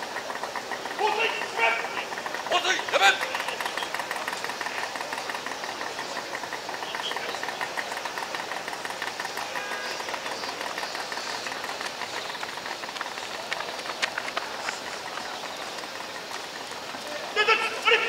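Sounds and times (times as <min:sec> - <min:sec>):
pump engine running: 0:00.0 - 0:18.0.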